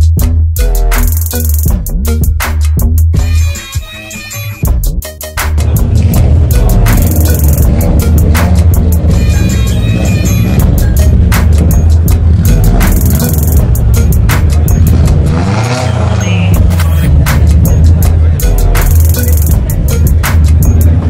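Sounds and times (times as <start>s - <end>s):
music with steady beat: 0.0s - 21.0s
car engine revving: 5.6s - 21.0s.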